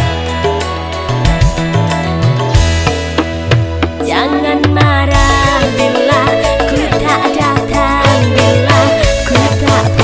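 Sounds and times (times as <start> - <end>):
bass notes: 0.0 - 10.0
plucked string instrument: 0.0 - 10.0
pop instrumental music: 0.0 - 10.0.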